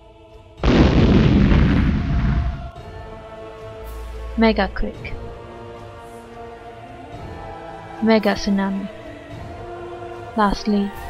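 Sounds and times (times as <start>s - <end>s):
background music: 0.0s - 11.0s
explosion with deep rumble: 0.6s - 2.8s.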